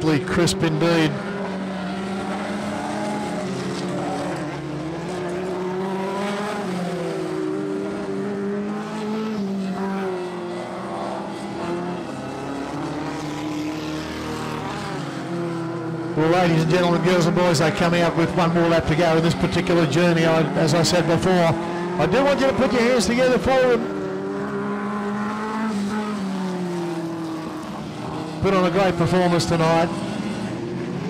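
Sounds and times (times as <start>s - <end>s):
race car engines running laps: 0.0s - 31.0s.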